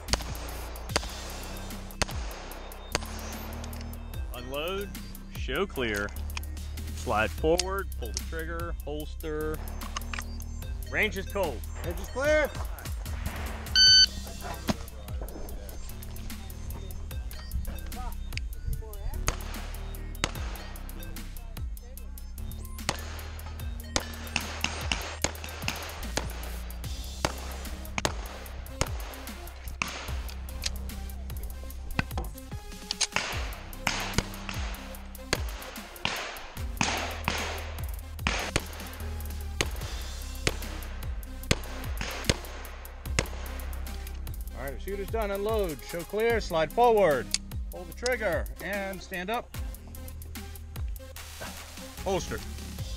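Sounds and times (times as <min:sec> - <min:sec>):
background music with bass line: 0:00.0 - 0:52.9
pistol shots: 0:01.9 - 0:03.6, 0:19.3 - 0:20.6, 0:22.8 - 0:26.6, 0:27.2 - 0:30.8, 0:32.9 - 0:39.0, 0:40.4 - 0:40.8, 0:41.4 - 0:43.6.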